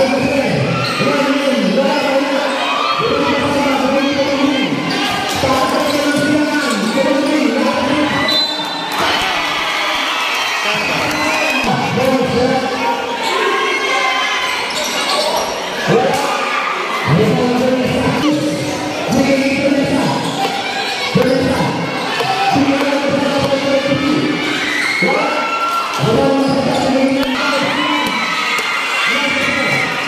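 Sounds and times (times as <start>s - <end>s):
crowd shouting and chattering: 0.0s - 30.0s.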